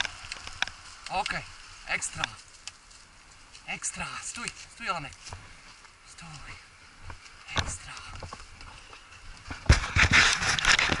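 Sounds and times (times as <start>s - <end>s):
rustling and scraping with clicks: 0.0s - 11.0s.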